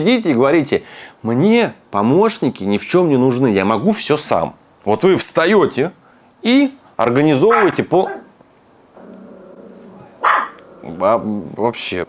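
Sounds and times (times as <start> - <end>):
dog barking: 7.5 - 8.3, 10.2 - 10.6
dog whining: 9.0 - 11.0.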